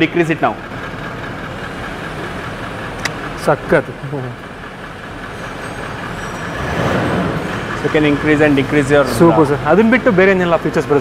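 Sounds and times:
engine running mechanical hum: 0:00.0 - 0:11.0.

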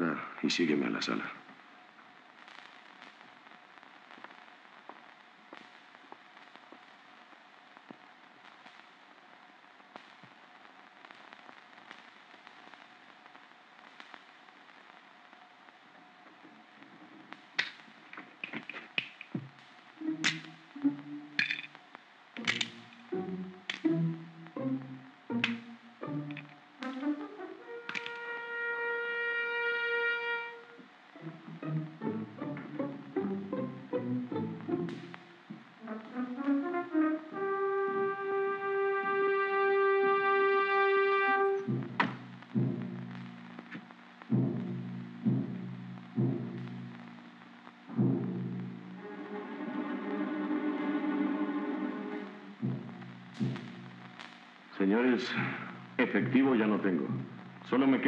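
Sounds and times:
faint steady hum: 0:00.0 - 0:58.0
film soundtrack hiss: 0:00.0 - 0:58.0
orchestral score music: 0:20.0 - 0:21.7, 0:22.4 - 0:43.2, 0:47.9 - 0:53.9.

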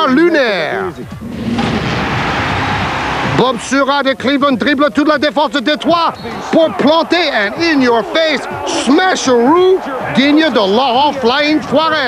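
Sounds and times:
rushing whoosh: 0:01.2 - 0:03.6.

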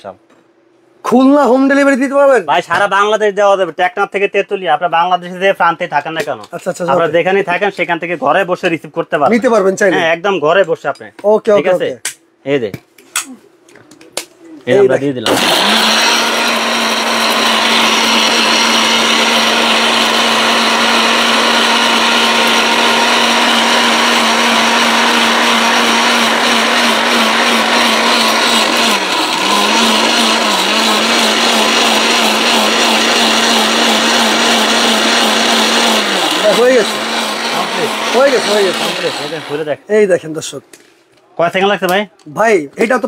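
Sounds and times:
mixer grinder motor whirring: 0:15.2 - 0:39.8.

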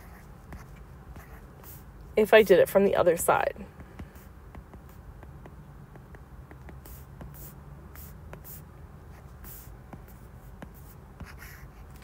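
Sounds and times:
stylus scratching on tablet: 0:00.0 - 0:02.7, 0:03.7 - 0:12.0.

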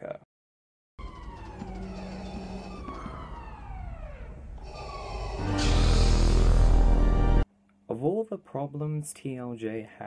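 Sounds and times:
wailing alarm tone: 0:01.0 - 0:07.4
lightsaber igniting and humming: 0:02.6 - 0:07.4.

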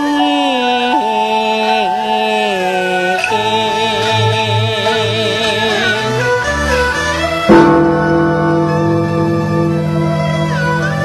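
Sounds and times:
opera singing long held notes: 0:00.0 - 0:06.6.

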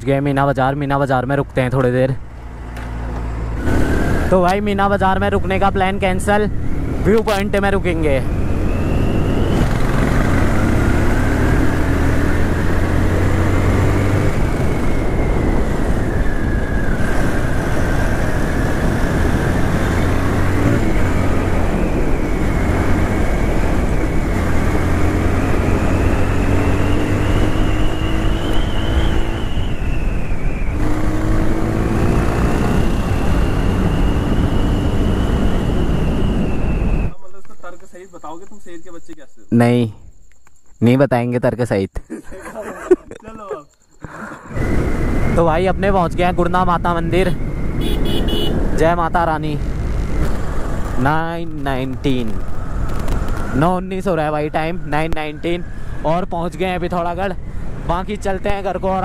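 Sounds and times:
wind rushing over microphone: 0:01.5 - 0:37.4, 0:44.4 - 0:59.0.

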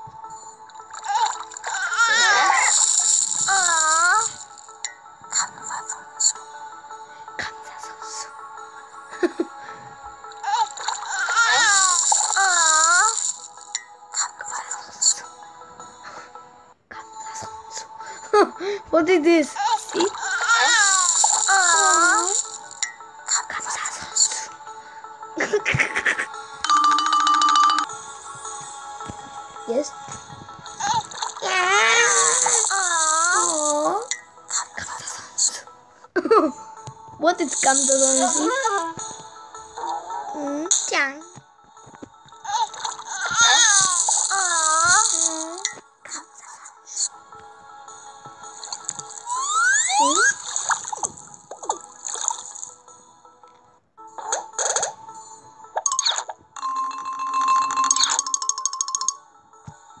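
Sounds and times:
light music: 0:00.0 - 1:00.0
high wavering sing-song voice: 0:19.6 - 0:22.6, 0:28.0 - 0:39.2, 0:42.4 - 0:50.7.

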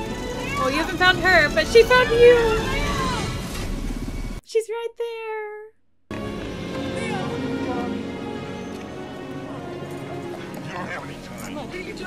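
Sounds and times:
film score music: 0:00.0 - 0:04.0, 0:06.1 - 0:12.0
voices: 0:00.3 - 0:03.3.

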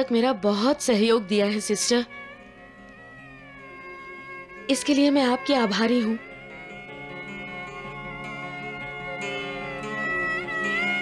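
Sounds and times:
soft sustained chord music: 0:00.0 - 0:11.0.

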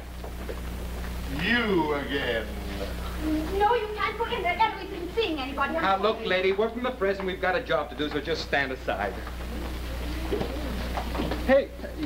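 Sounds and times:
television hiss and hum: 0:00.0 - 0:12.0
faint low voices muttering: 0:01.2 - 0:12.0.

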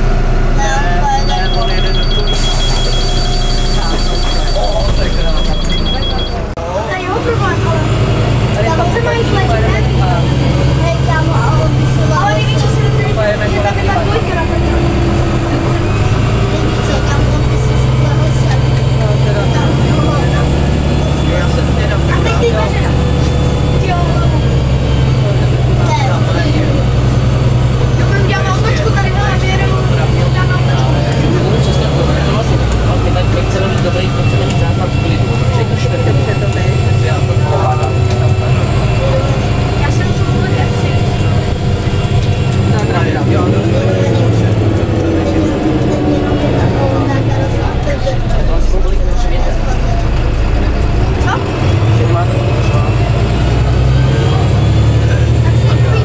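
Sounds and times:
bus diesel engine drone: 0:00.0 - 0:56.0
passengers chatting: 0:00.0 - 0:56.0.

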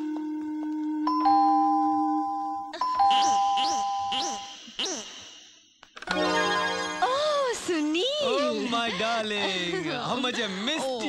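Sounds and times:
two-tone doorbell chime: 0:01.1 - 0:04.2
background music: 0:06.0 - 0:10.0.

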